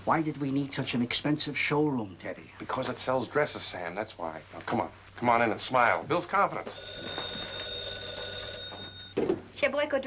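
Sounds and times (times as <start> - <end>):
telephone bell ringing: 6.6 - 9.2.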